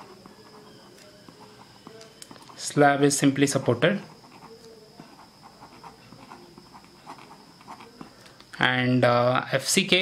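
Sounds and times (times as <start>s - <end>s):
pen scratching on paper: 0.0s - 1.9s, 4.0s - 8.1s
faint steady high whine: 0.0s - 10.0s.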